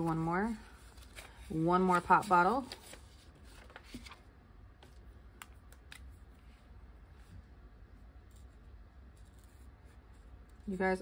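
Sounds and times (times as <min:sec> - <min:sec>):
low steady hum: 0:00.0 - 0:11.0
paper ticks and rustles: 0:01.0 - 0:04.2.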